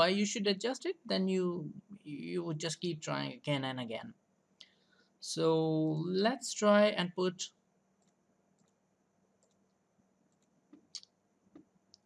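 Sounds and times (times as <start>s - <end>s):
computer mouse clicks: 8.0s - 8.8s, 9.4s - 12.0s.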